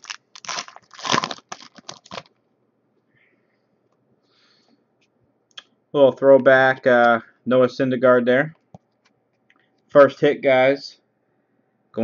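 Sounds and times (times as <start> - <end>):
foil wrapper crinkling and tearing: 0.0 - 2.4.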